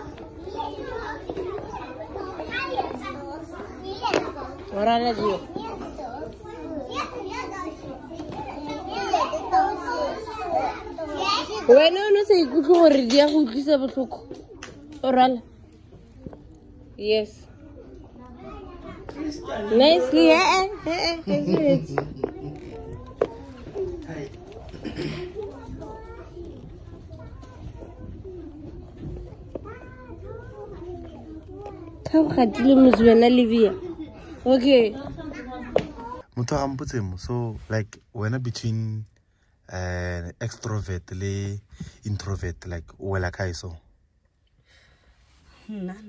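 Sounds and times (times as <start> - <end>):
children chattering: 0.0 - 36.4.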